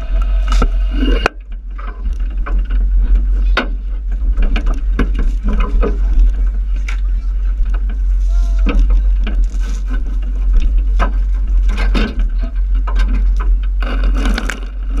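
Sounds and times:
boat rumbling: 0:00.0 - 0:15.0
people shouting: 0:08.2 - 0:08.9.

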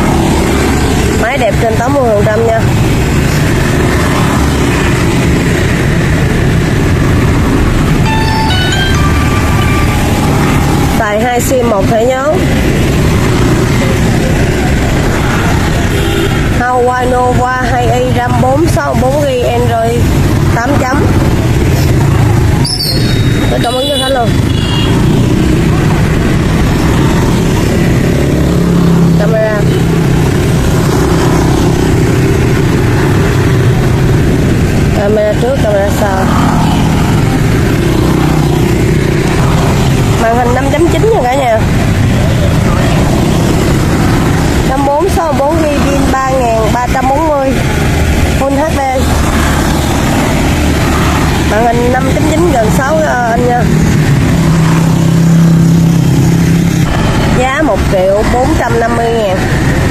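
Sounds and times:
voices talking: 0:00.0 - 0:05.6, 0:07.4 - 0:34.2, 0:34.8 - 0:54.3, 0:56.8 - 0:59.9
street traffic rumble: 0:00.0 - 0:59.9.

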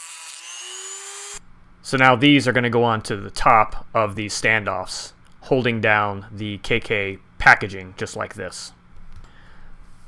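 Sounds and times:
rotary tool whine cutting wood: 0:00.0 - 0:01.4.

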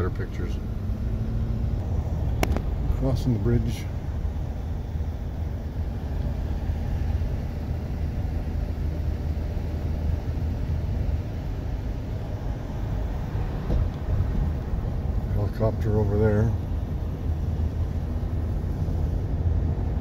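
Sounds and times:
car driving heard from cabin: 0:00.0 - 0:20.0.

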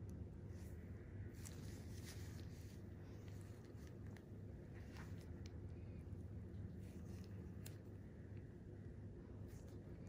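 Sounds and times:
soft ticks and rustles: 0:00.0 - 0:08.6
low room hum: 0:00.0 - 0:10.0.

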